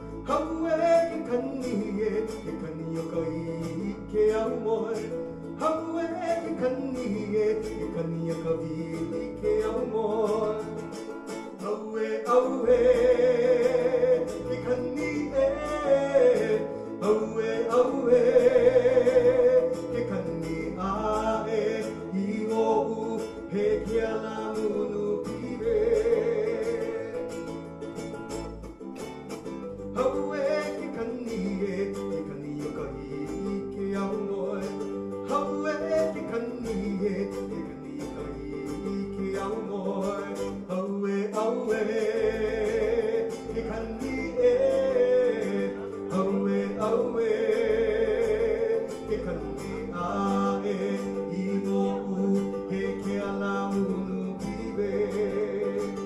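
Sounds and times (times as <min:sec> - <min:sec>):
man singing with vibrato: 0:00.0 - 0:56.0
plucked small guitar: 0:00.0 - 0:56.0.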